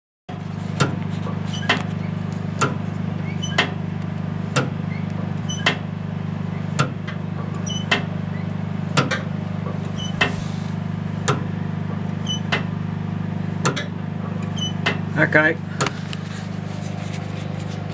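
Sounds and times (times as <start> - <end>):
car engine idling: 0.4 - 17.9.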